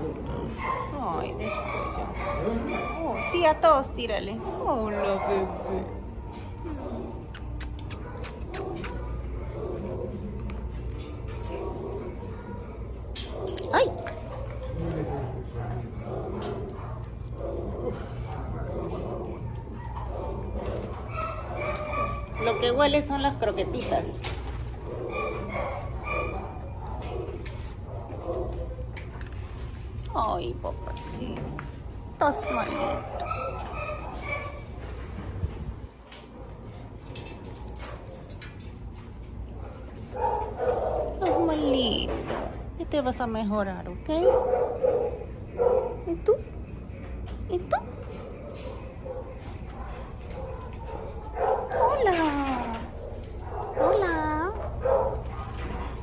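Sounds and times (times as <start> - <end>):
dogs barking: 0.0 - 42.8, 44.0 - 56.0
steady low hum: 0.0 - 56.0.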